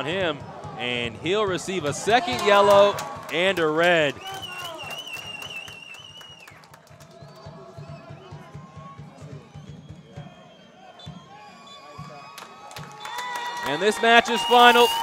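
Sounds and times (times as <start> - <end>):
referee's pea whistle: 4.1 - 6.6, 7.2 - 15.0
faint stadium crowd murmur: 6.9 - 12.6.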